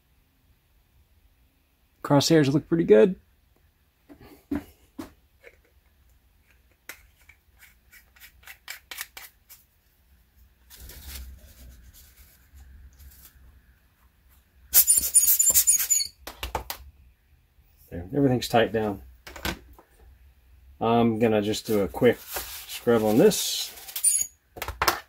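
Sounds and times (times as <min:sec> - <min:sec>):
tissue rustling and crinkling: 0:21.7 - 0:24.0.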